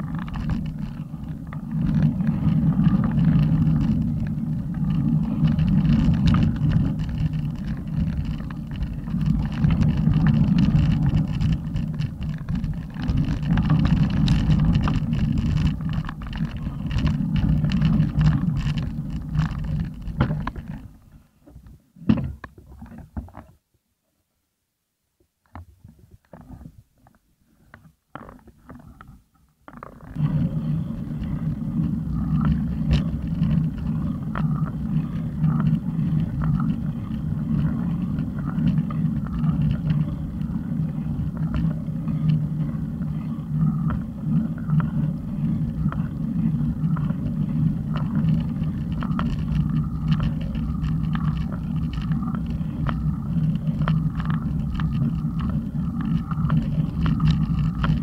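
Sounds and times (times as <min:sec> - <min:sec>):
wind and road noise rumble: 0:00.0 - 0:23.2, 0:29.7 - 0:58.0.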